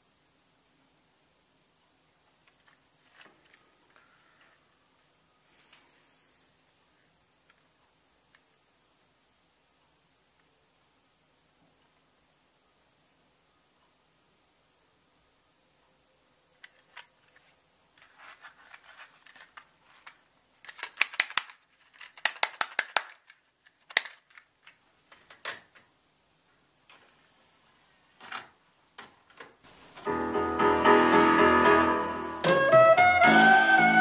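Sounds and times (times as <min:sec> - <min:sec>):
blues-style pop song from tape: 0:30.0 - 0:34.0.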